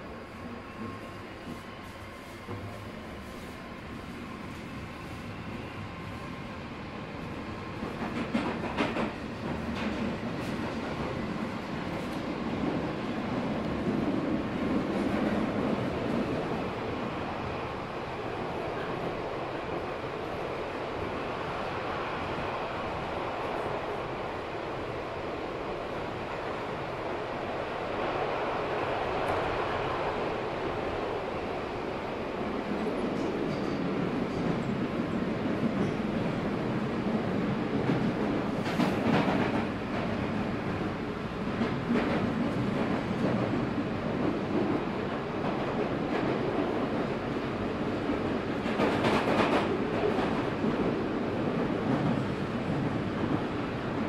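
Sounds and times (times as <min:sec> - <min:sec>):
train rumbling: 0:00.0 - 0:54.0
train wheels clattering: 0:07.8 - 0:12.3.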